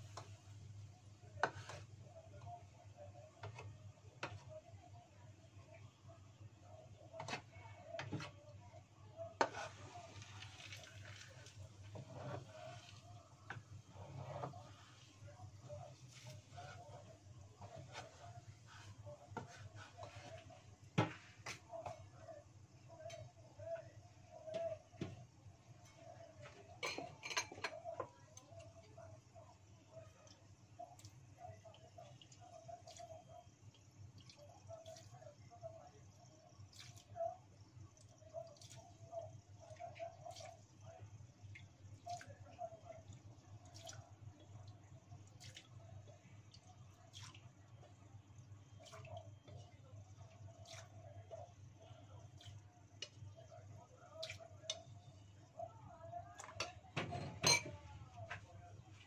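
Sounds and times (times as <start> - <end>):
oil crackling and popping: 9.4 - 13.8.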